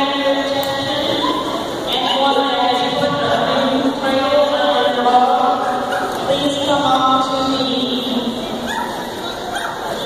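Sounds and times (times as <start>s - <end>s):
hubbub of voices in a hall: 0.0s - 10.0s
dog crying: 5.6s - 6.2s, 8.6s - 10.0s.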